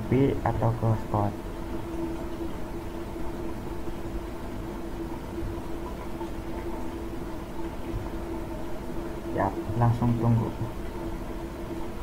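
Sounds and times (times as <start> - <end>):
room hum and hiss: 0.0 - 12.0.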